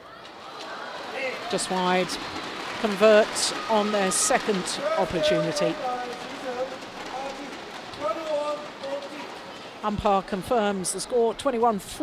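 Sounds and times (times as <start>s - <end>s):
crowd hiss: 0.0s - 10.0s
faint voices talking: 0.0s - 12.0s.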